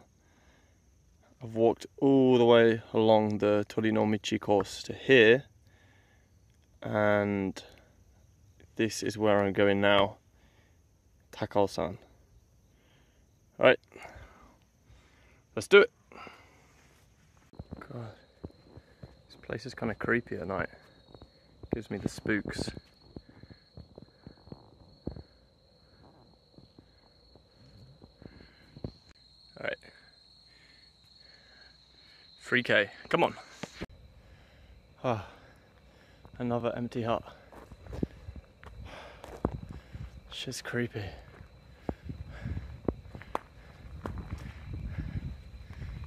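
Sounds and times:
high-pitched insect trill: 0.0s - 46.0s
footsteps on dirt path: 16.8s - 19.5s, 20.7s - 29.1s, 37.2s - 46.0s
footsteps crunching on gravel: 37.2s - 46.0s.

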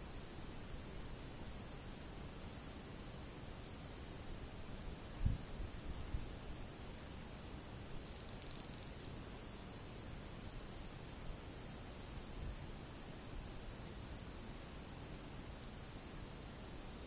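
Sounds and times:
faint outdoor hiss: 0.0s - 17.0s.

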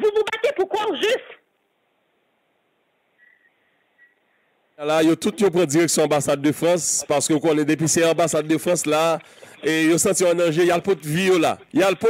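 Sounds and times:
faint high steady tone: 3.1s - 4.6s.

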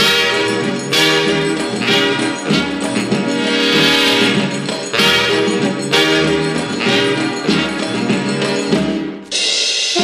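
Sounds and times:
dance orchestra playing: 0.0s - 9.2s
drum kit: 0.0s - 10.0s.

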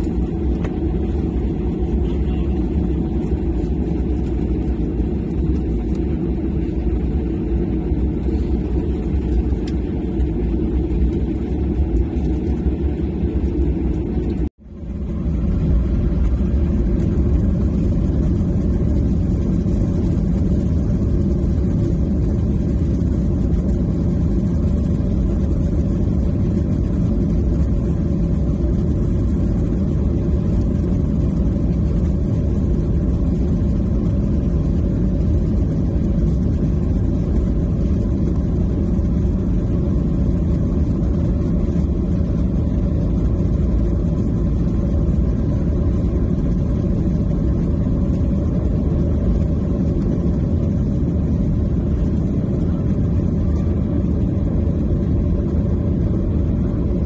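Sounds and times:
jet engine rumble in cabin: 0.0s - 57.0s.

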